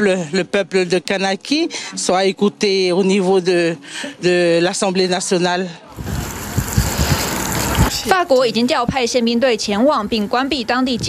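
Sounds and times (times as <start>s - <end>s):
wind buffeting microphone: 6.0s - 8.1s, 10.0s - 11.0s.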